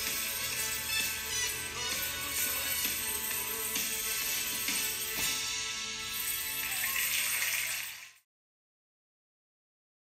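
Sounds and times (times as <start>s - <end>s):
christmas medley music: 0.0s - 8.1s.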